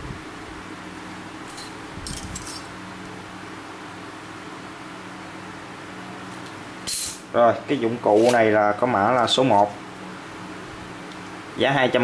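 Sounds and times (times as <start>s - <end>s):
steady machine hum: 0.0s - 12.0s
metal tools clicking and rattling: 1.5s - 2.7s.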